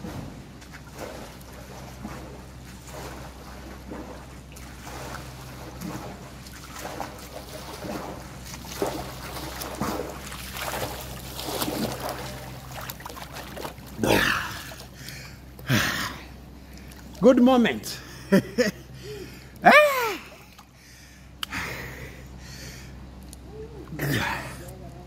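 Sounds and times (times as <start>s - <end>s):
swimming stroke splashes: 0.0s - 21.9s
pool water splashing: 0.0s - 22.9s
steady low hum: 0.0s - 25.0s.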